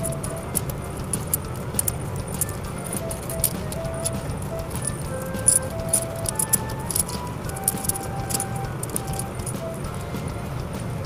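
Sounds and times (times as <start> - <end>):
metal coins clinking: 0.0 - 10.2.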